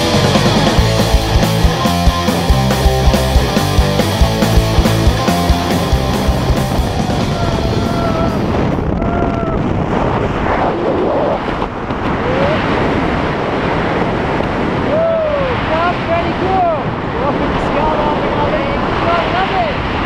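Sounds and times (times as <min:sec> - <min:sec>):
rock music: 0:00.0 - 0:08.5
wind rushing over microphone: 0:00.0 - 0:20.0.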